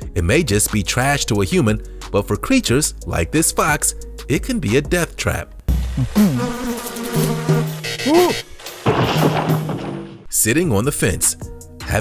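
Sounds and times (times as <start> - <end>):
cartoon fly buzzing: 5.7 - 8.8.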